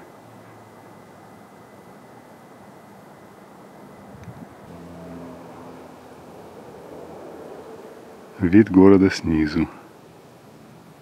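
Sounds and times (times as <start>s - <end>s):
distant road traffic hum: 0.0s - 11.0s
low engine note: 3.7s - 11.0s.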